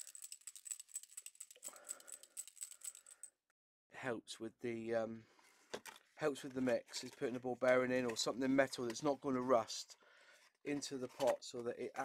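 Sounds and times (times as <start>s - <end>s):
ball bearings rattling in paint pot: 0.0s - 3.3s.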